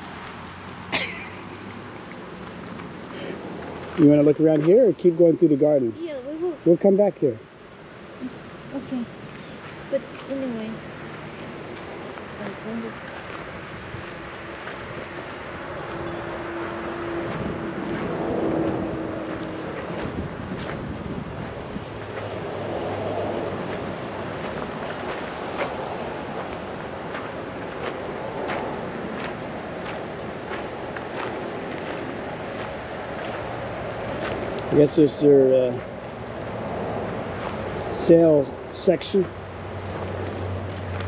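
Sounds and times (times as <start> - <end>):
footsteps on gravel: 9.6 - 34.6
wind on microphone: 11.6 - 34.6.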